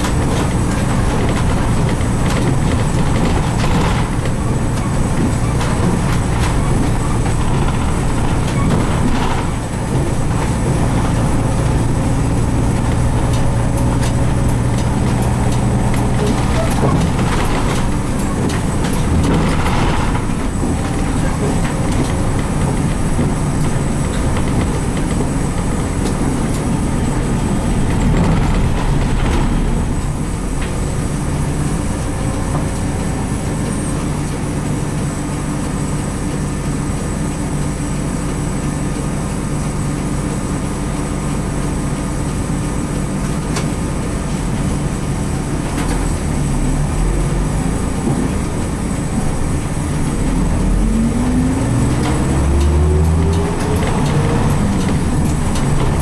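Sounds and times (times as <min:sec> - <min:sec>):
diesel bus engine running: 0:00.0 - 0:56.0
road noise: 0:00.0 - 0:56.0.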